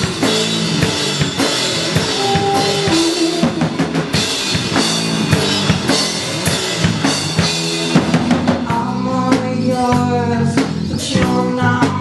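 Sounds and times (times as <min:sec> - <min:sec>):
bass guitar: 0:00.0 - 0:12.0
drum kit beat: 0:00.0 - 0:12.0
electric guitar: 0:00.0 - 0:12.0.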